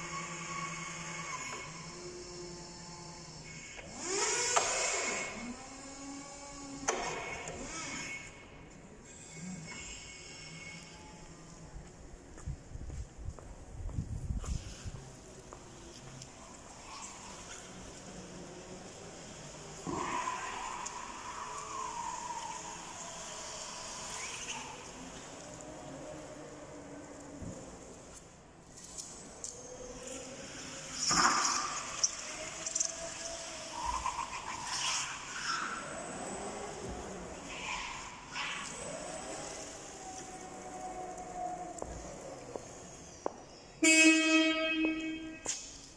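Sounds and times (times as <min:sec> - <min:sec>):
electric motor whining: 0:00.0 - 0:11.8, 0:14.5 - 0:43.6
electric forklift driving: 0:00.0 - 0:45.9
high wavering squeal: 0:16.2 - 0:45.9
forklift horn honk: 0:43.8 - 0:45.5.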